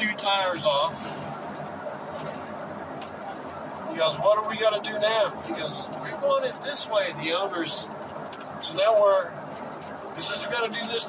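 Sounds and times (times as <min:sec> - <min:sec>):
car cabin road noise: 0:00.0 - 0:11.0.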